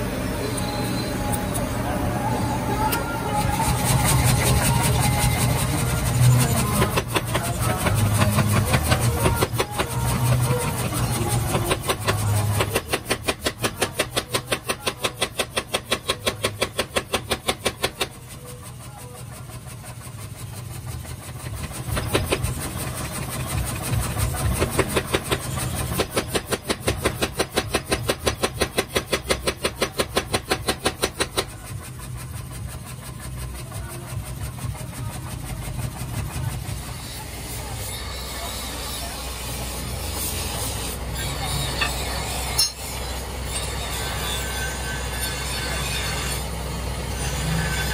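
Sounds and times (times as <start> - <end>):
hammer motor hum: 0.0 - 47.9.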